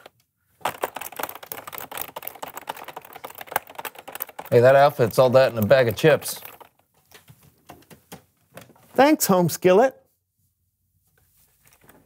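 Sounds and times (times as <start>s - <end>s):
fast typing on keyboard: 0.6s - 6.9s.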